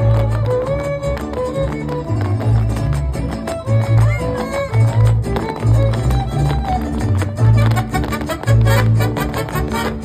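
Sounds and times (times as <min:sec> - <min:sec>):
strummed guitars: 0:00.0 - 0:10.0
violin melody: 0:00.0 - 0:10.0.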